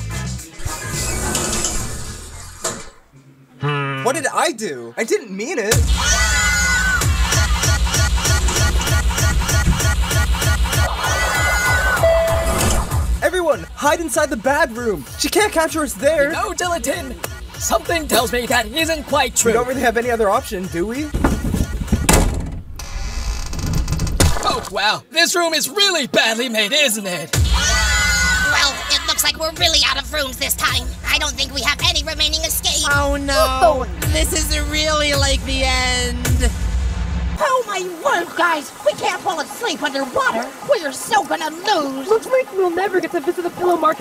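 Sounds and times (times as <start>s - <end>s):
background music: 0.0s - 3.1s, 5.7s - 22.4s, 26.3s - 44.0s
automatic door mechanism opening: 0.6s - 3.1s
low rumbling: 5.8s - 13.2s, 29.0s - 37.4s.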